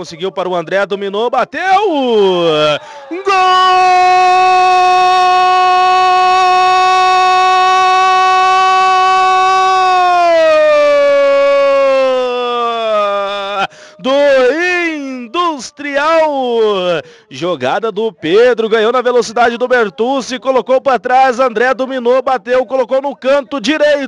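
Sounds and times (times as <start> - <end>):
commentator speaking: 0.0 - 5.8, 13.0 - 24.0
commentator's long goal call: 1.5 - 17.0.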